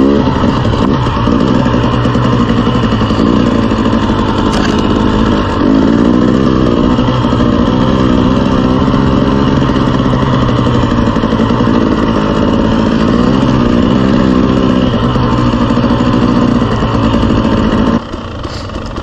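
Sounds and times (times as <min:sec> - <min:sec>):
dirt bike engine running: 0:00.0 - 0:19.0.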